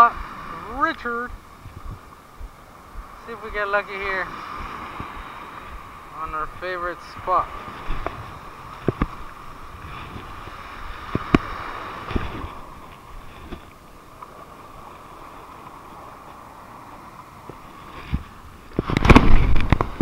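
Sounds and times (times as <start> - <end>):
surf: 0.0 - 20.0
wind: 0.0 - 20.0.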